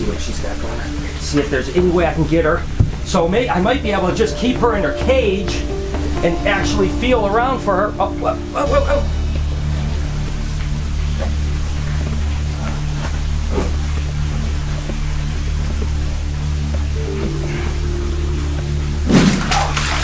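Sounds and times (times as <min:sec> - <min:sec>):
background music with low bass: 0:00.0 - 0:20.0.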